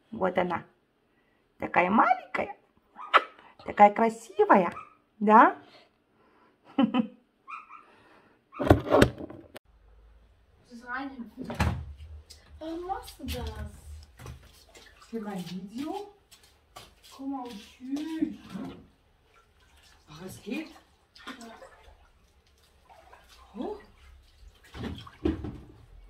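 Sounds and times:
pool water splashing: 12.6 - 26.0.

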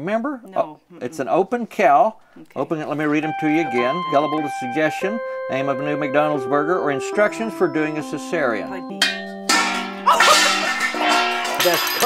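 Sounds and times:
metal pan struck with stick: 9.0 - 12.0.

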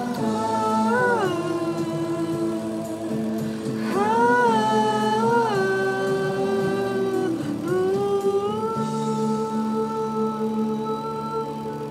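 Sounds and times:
instrumental backing: 0.0 - 11.9.

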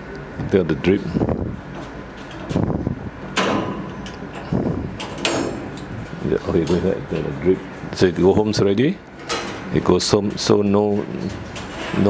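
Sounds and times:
metal cage door clanking: 3.3 - 5.9, 9.2 - 9.7.

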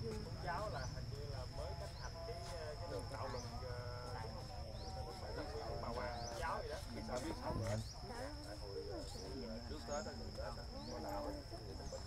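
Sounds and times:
distant chatter of people: 0.0 - 12.0.

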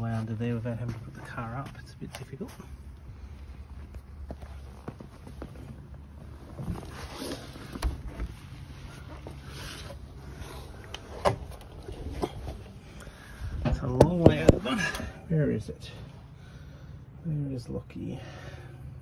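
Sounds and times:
scuffing and rustling: 0.0 - 10.1.

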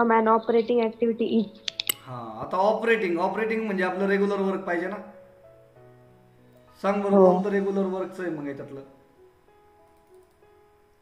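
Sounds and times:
sharp computer clicks: 1.5 - 2.0, 9.8 - 11.0
person speaking: 6.8 - 9.0.

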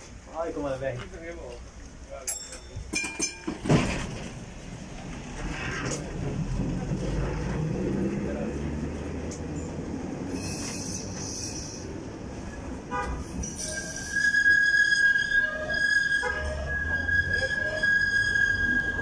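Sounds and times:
tram wheels rumbling on rails: 0.0 - 19.0.

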